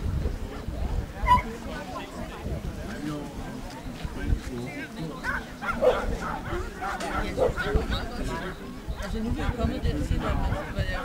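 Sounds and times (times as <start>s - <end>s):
people talking: 0.0s - 11.0s
dog barking: 1.2s - 1.4s, 5.2s - 7.8s.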